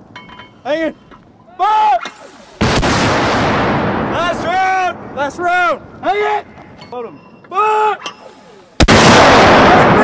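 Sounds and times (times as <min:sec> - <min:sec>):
man shouting: 0:01.5 - 0:02.1, 0:06.0 - 0:06.5
mortar firing blast: 0:02.2 - 0:05.4, 0:08.8 - 0:10.0.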